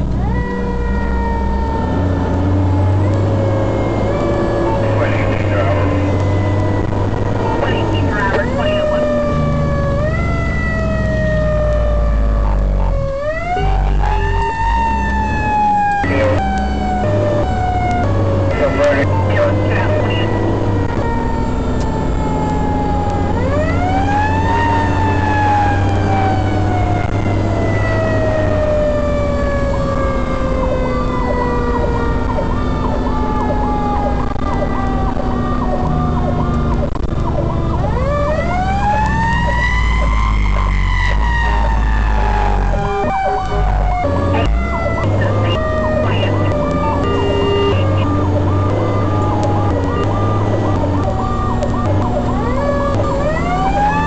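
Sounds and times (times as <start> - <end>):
fire engine siren winding: 0.0 - 54.0
low engine rumble: 0.0 - 54.0
fast-cycling siren tone: 0.2 - 54.0.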